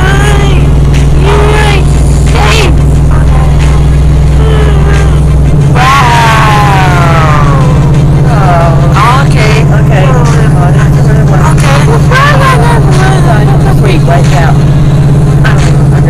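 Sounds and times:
loud steady low hum: 0:00.0 - 0:16.0.

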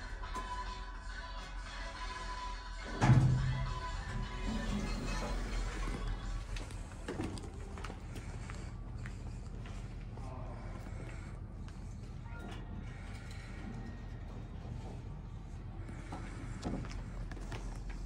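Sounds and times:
faint background music: 0:00.0 - 0:18.0
room noise: 0:00.0 - 0:18.0
elevator doors sliding shut: 0:02.8 - 0:07.6.

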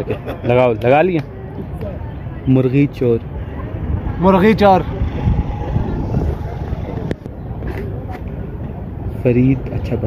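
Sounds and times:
faint voices: 0:00.0 - 0:10.0
low outdoor rumble: 0:03.2 - 0:09.2.

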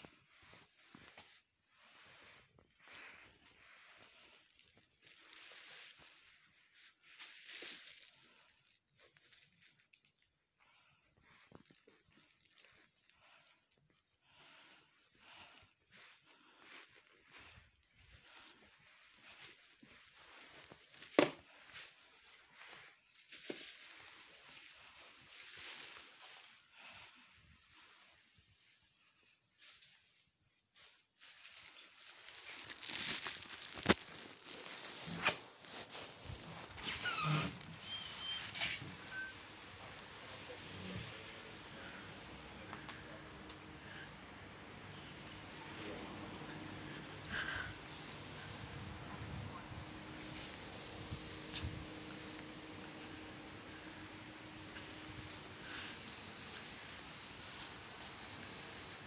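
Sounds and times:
steady hiss: 0:35.0 - 0:59.0.

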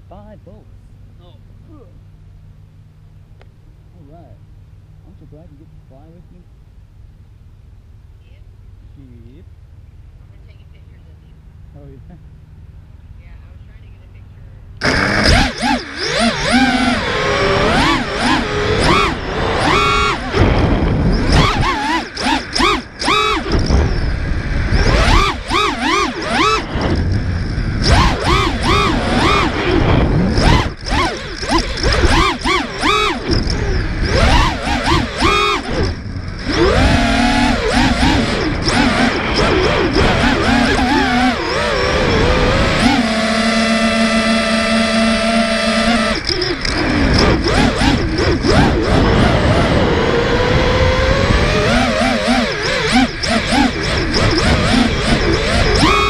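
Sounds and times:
quadcopter motors whining: 0:13.2 - 0:56.0.

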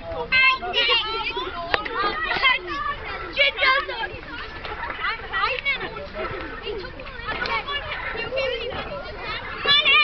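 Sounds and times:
children calling out: 0:00.2 - 0:10.0.

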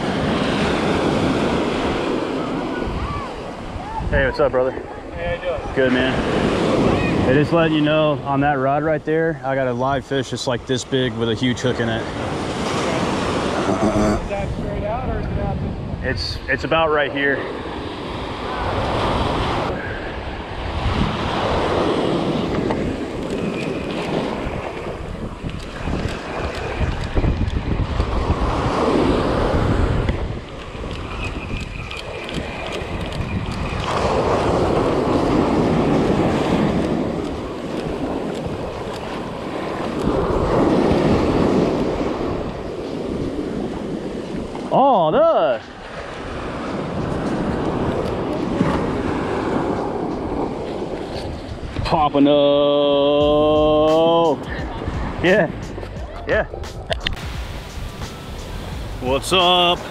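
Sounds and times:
surf breaking on sand: 0:00.0 - 0:55.8, 0:56.6 - 0:59.9
wind rumbling on microphone: 0:00.0 - 0:59.9.

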